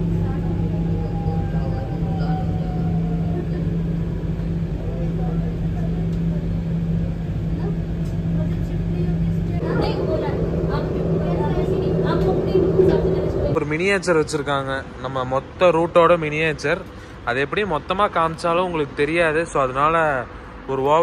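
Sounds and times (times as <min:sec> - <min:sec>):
train carriage hum: 0:00.0 - 0:15.4.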